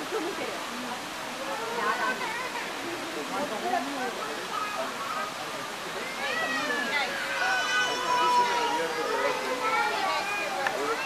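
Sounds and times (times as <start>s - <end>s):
people talking at once: 0.0s - 11.0s
children's voices: 1.5s - 2.8s, 6.0s - 11.0s.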